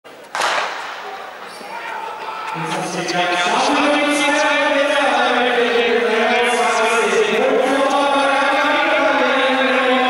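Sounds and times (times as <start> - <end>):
starting gun crack with echo: 0.3 - 1.3.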